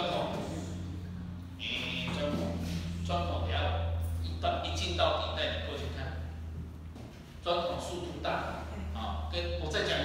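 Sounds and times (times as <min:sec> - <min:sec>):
man speaking: 0:00.0 - 0:06.4, 0:07.4 - 0:10.0
low hum: 0:00.0 - 0:10.0.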